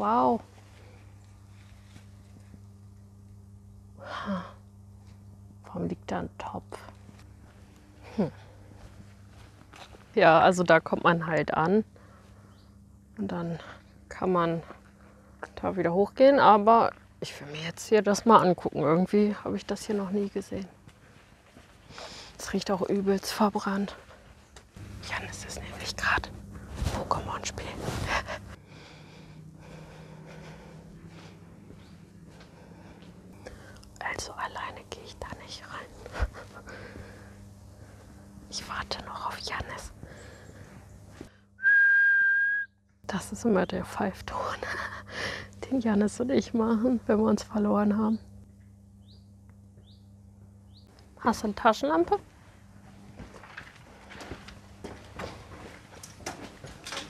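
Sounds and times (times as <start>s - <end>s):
steady low hum: 0.0s - 57.0s
faint footsteps: 0.4s - 3.1s, 6.8s - 10.2s, 19.6s - 23.2s, 23.8s - 28.6s, 29.2s - 33.8s, 52.2s - 57.0s
woman whispering: 25.0s - 28.2s, 34.0s - 36.6s, 38.5s - 40.0s.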